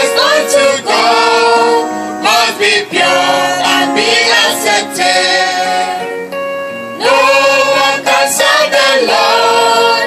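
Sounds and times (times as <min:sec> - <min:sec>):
gospel singing with instruments: 0:00.0 - 0:10.0.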